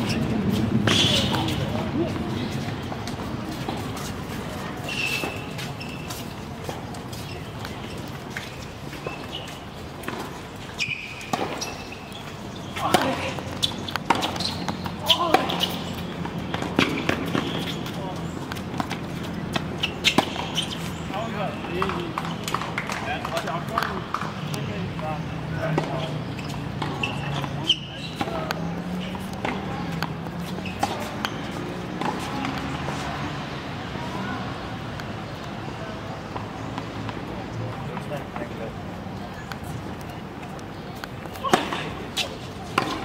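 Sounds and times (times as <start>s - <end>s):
hubbub of distant voices: 0.0s - 43.0s
ball bouncing on hard court: 12.8s - 20.7s
tennis ball struck by rackets: 12.8s - 20.7s, 26.8s - 30.2s, 41.0s - 43.0s.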